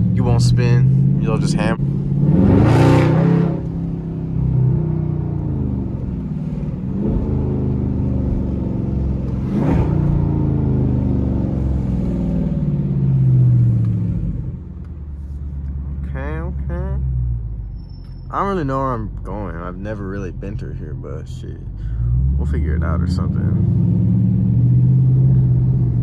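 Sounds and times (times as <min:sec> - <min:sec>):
car engine accelerating: 0:00.0 - 0:26.0.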